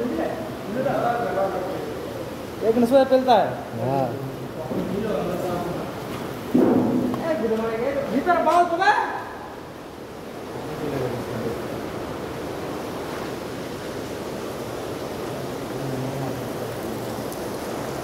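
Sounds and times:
steady rushing noise: 6.5 - 8.5.

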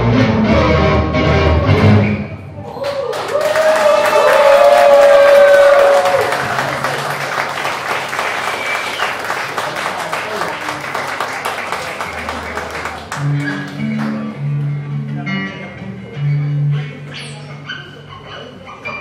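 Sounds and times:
voices cheering: 2.6 - 9.5
audience applauding: 2.7 - 14.4.

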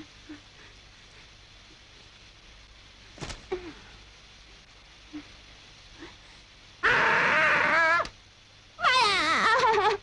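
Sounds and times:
faint background hush: 0.0 - 6.8.

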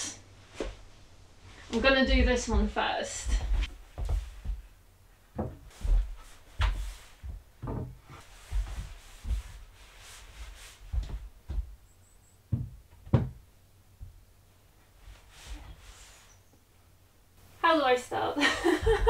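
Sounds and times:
wooden plank knocks and thuds: 5.3 - 9.6, 10.9 - 11.8, 12.5 - 13.4.

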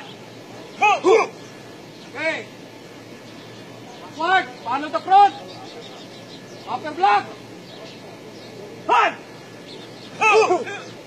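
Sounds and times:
man shouting a command: 0.8 - 1.4, 4.2 - 5.4, 6.7 - 7.4, 8.8 - 9.3, 10.2 - 10.9.

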